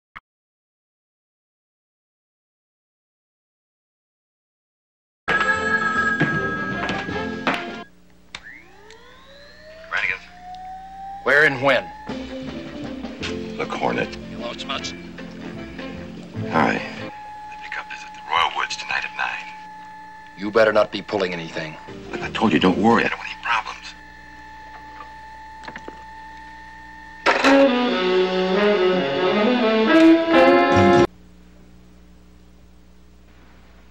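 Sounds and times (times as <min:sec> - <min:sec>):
rising electronic whine: 0:08.4 - 0:14.4, 0:16.1 - 0:31.1
dramatic score music: 0:10.5 - 0:31.1
brassy jazz music with saxophone: 0:27.5 - 0:31.1.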